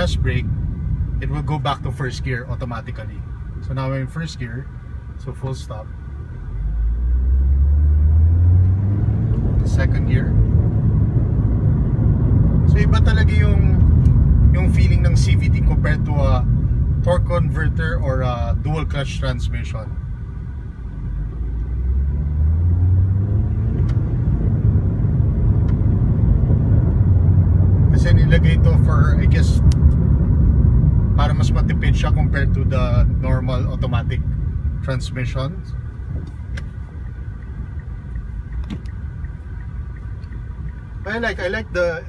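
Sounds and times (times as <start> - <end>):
car engine accelerating: 6.4 - 17.9, 20.9 - 41.6
car engine revving from inside: 6.6 - 14.7, 21.1 - 28.4.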